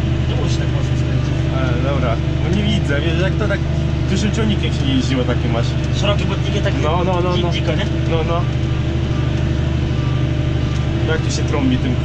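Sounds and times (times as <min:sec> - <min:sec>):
tractor diesel engine drone: 0:00.0 - 0:12.0.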